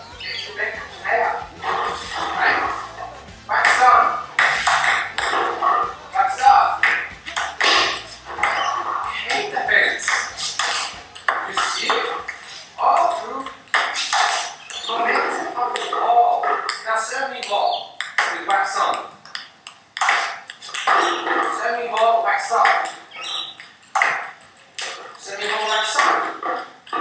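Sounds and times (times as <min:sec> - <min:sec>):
background music: 0:00.0 - 0:16.6
voices: 0:00.0 - 0:27.0
table tennis ball clicks: 0:03.6 - 0:05.5, 0:09.3 - 0:14.9, 0:15.8 - 0:27.0.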